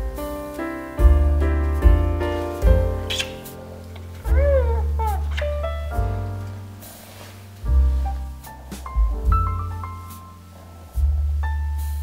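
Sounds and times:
soft piano music: 0:00.0 - 0:12.0
cat meowing: 0:04.2 - 0:05.6.

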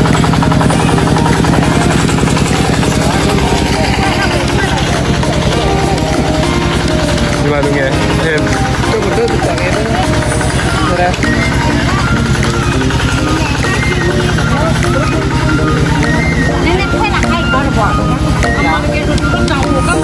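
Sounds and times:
chatter of many voices: 0:00.0 - 0:20.0
engine running with low pulse: 0:00.0 - 0:20.0.

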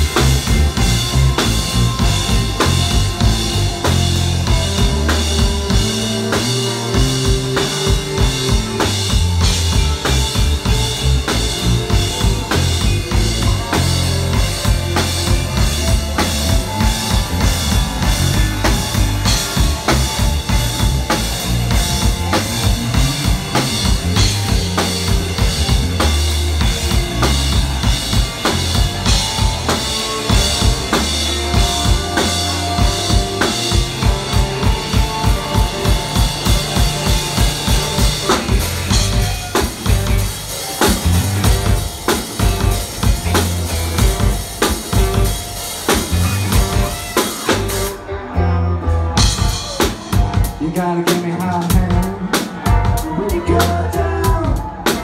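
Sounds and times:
drum kit beat: 0:00.0 - 0:48.1, 0:49.2 - 0:55.0
live band playing: 0:00.0 - 0:55.0.

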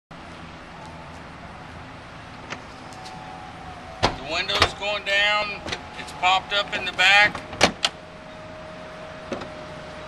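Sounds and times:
car low steady hum: 0:00.1 - 0:10.0.

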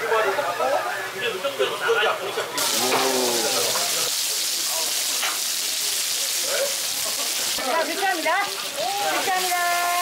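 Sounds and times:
food sizzling in hot fat: 0:02.6 - 0:10.0.

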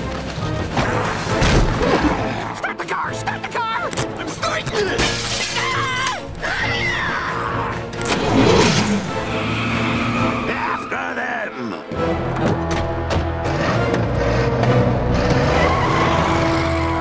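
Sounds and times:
action soundtrack music: 0:00.0 - 0:17.0
characters screaming and yelling: 0:02.0 - 0:13.8, 0:15.2 - 0:17.0
glass breaking: 0:05.0 - 0:05.8.

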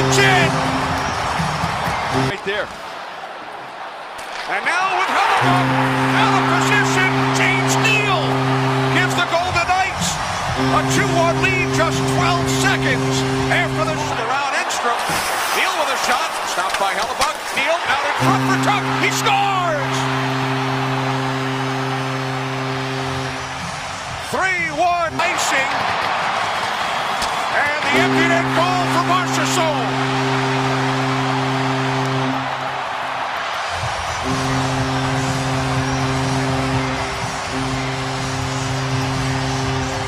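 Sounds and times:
goal horn blasts: 0:00.0 - 0:02.7, 0:05.0 - 0:40.0
loud shouting: 0:00.0 - 0:22.6, 0:23.3 - 0:38.3
crowd cheering: 0:00.0 - 0:40.0.

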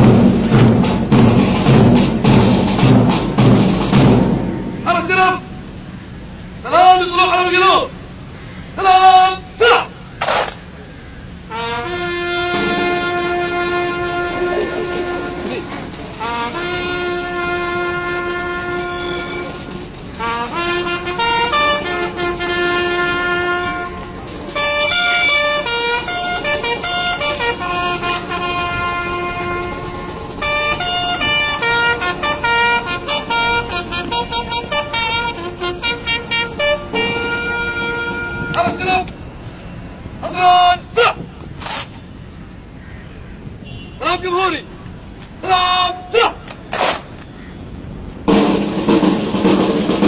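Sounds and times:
military brass band long notes: 0:00.0 - 0:39.1, 0:48.3 - 0:50.0.

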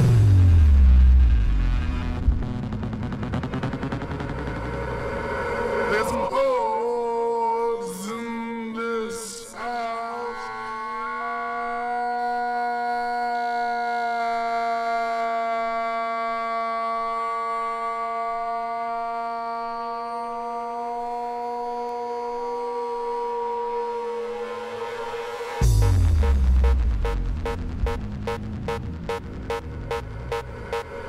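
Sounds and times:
held synthesizer chords over drone: 0:00.0 - 0:06.2, 0:22.4 - 0:31.0.

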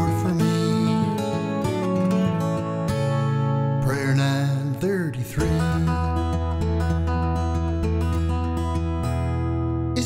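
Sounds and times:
fingerpicked acoustic guitar: 0:00.0 - 0:10.0.

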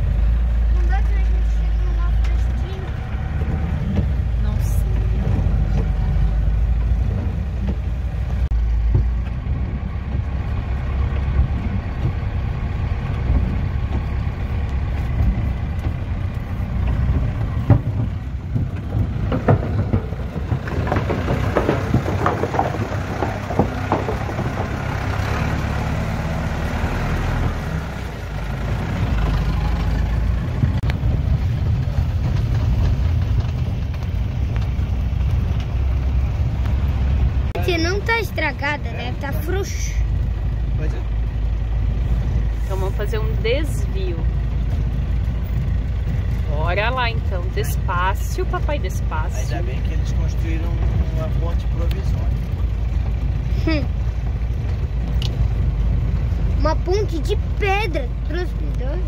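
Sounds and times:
engine running steadily: 0:00.0 - 0:59.0
tyres on wet gravel: 0:00.0 - 0:59.0.

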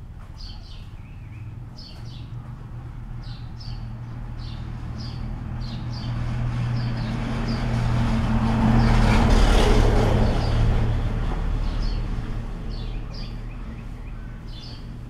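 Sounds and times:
motor vehicle passing: 0:00.0 - 0:15.0
small birds chirping: 0:00.2 - 0:07.7, 0:11.6 - 0:15.0.

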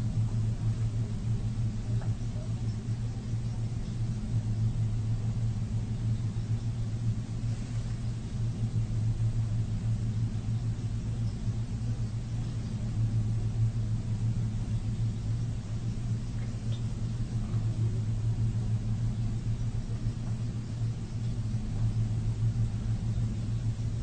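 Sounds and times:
low-pitched hum: 0:00.0 - 0:24.0.

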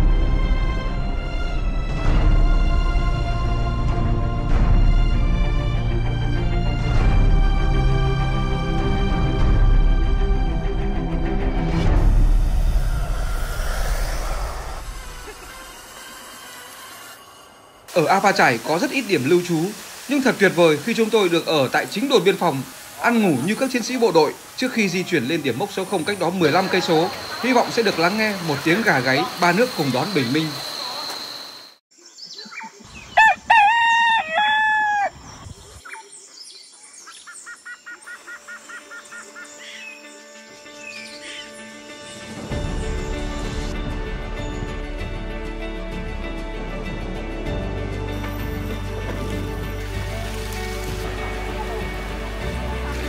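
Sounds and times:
rooster crowing: 0:33.0 - 0:35.3.

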